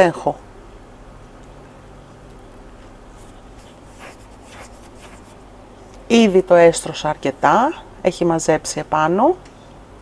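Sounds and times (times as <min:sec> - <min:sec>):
low background hum: 0:00.0 - 0:10.0
yarn rustling on tabletop: 0:03.1 - 0:05.5.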